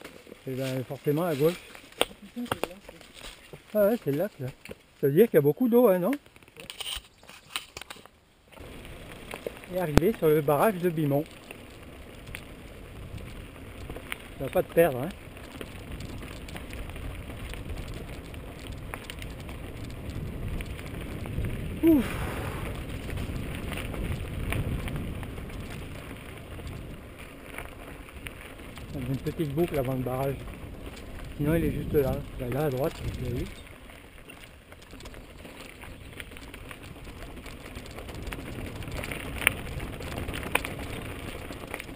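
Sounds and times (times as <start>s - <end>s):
bike rattling over stones: 0.0s - 41.9s
tyres crunching on gravel: 0.0s - 41.9s
tyre and wind rush: 15.8s - 33.8s.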